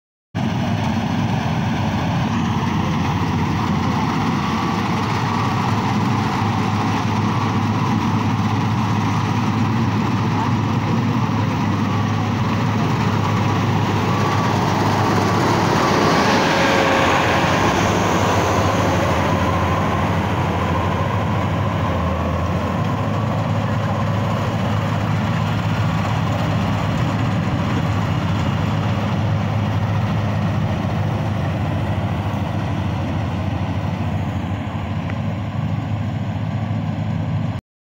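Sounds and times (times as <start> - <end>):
combine harvester running: 0.4 - 37.6.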